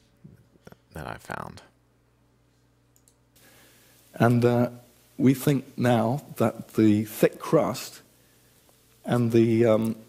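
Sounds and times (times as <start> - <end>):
faint room hum: 0.0 - 10.0
faint steady hiss: 0.0 - 10.0
faint click: 2.9 - 3.2.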